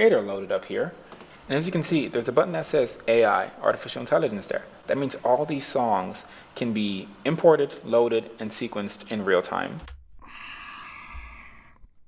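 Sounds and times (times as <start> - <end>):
person breathing out: 10.2 - 11.9.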